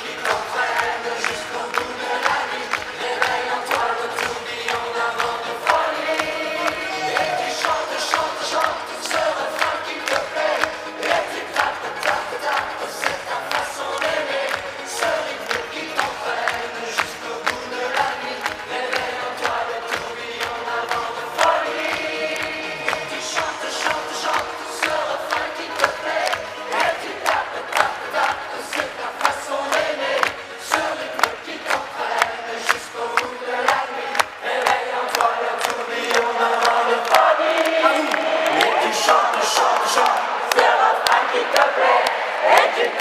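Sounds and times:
crowd noise: 0.0s - 43.0s
live pop music: 0.0s - 43.0s
voices singing: 0.0s - 43.0s.

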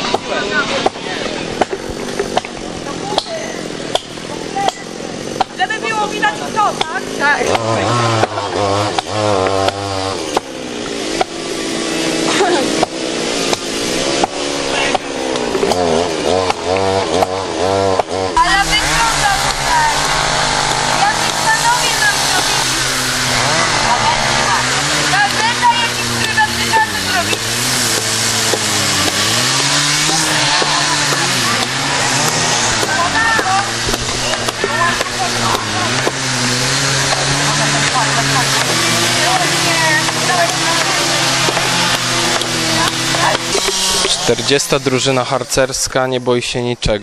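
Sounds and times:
small engine running: 0.0s - 46.0s.

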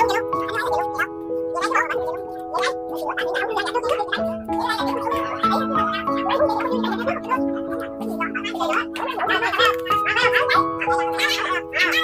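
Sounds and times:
music with sustained notes: 0.0s - 12.0s.

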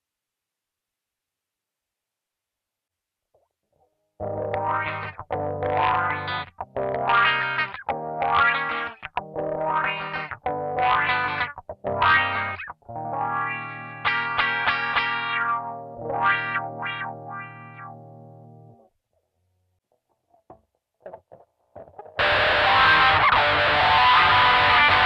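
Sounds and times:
distorted electric guitar chords: 4.2s - 18.8s, 21.1s - 25.0s.

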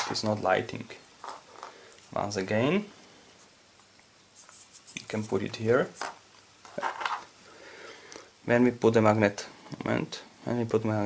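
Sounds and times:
faint handling of thin wires: 1.2s - 2.5s, 3.3s - 7.4s.

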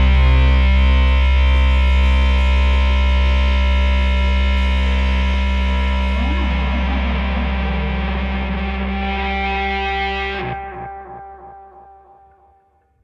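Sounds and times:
distorted guitar and bass chord: 0.0s - 12.6s
wavering guitar note with bends: 0.0s - 12.8s.

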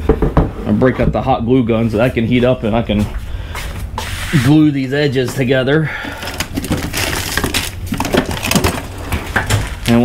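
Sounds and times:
objects being handled: 5.2s - 10.0s.

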